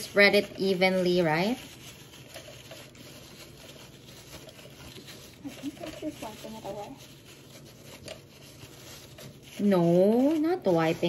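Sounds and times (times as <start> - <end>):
tissue rubbing on nonstick plate: 0.0 - 11.0.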